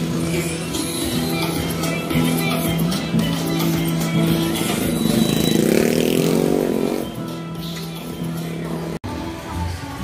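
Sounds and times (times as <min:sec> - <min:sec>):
music: 0:00.0 - 0:10.0
motorcycle engine accelerating: 0:04.6 - 0:07.1.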